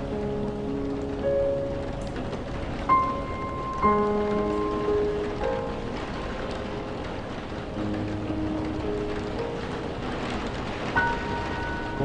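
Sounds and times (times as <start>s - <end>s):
low piano chord: 0.0s - 12.0s
piano music: 0.0s - 12.0s
steady rain: 0.0s - 12.0s.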